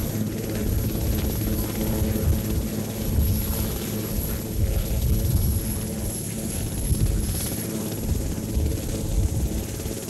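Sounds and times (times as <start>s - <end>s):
helicopter rotors and turbine drone: 0.0s - 10.0s.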